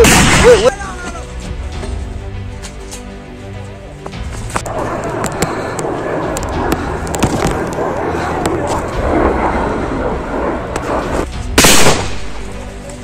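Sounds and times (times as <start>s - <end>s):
gunshot blast: 0.0s - 0.7s, 11.6s - 12.4s
scattered cracks: 4.4s - 9.0s.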